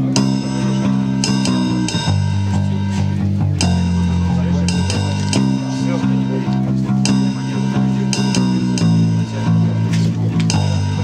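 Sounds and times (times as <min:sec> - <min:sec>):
electric bass guitar: 0:00.0 - 0:11.0
keyboard: 0:00.0 - 0:11.0
sharp ticking beat: 0:00.0 - 0:11.0.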